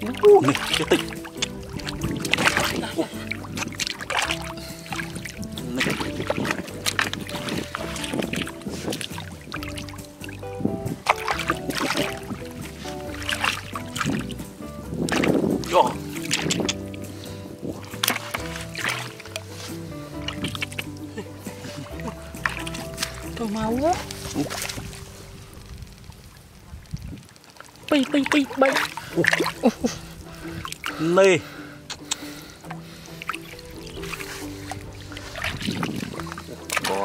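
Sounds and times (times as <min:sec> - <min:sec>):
hands splashing in water: 0:00.0 - 0:25.7, 0:27.5 - 0:37.0
background music: 0:00.0 - 0:26.6, 0:27.5 - 0:37.0.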